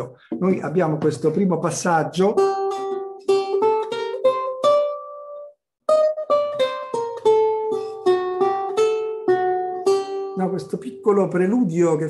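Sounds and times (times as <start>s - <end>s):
lute plucked notes: 0.0s - 12.0s.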